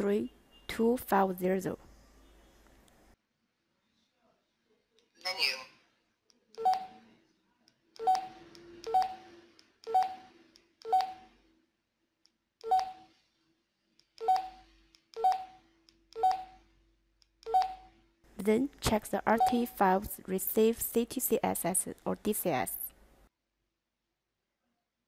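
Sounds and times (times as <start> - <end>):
radio key beeps: 19.3 - 19.7.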